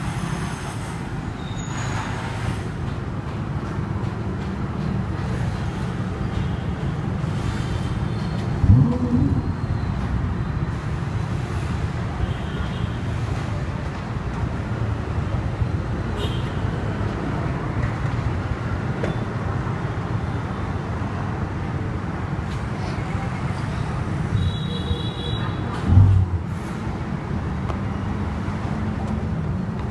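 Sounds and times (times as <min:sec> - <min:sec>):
street traffic: 0:00.0 - 0:29.9
engine revving: 0:08.6 - 0:09.6.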